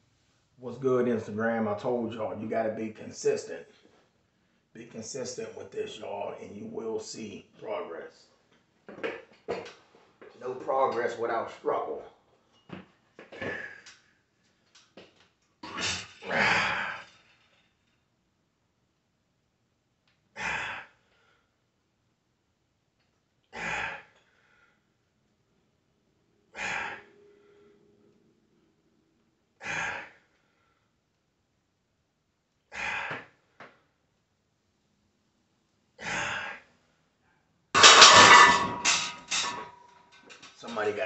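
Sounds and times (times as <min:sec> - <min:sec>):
loud heavy exhale: 0:13.4 - 0:13.8, 0:26.6 - 0:27.7, 0:29.6 - 0:30.2, 0:32.7 - 0:33.3
weightlifter breathing: 0:13.4 - 0:14.0
man exhaling forcefully: 0:20.4 - 0:20.9, 0:23.6 - 0:24.1, 0:26.6 - 0:27.1, 0:29.6 - 0:30.2, 0:32.7 - 0:33.3, 0:36.0 - 0:36.6.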